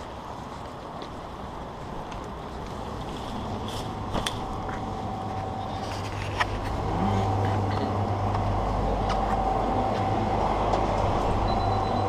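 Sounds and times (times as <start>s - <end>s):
faint constant hum and tone: 0.0s - 12.0s
steady background rumble: 0.0s - 12.0s.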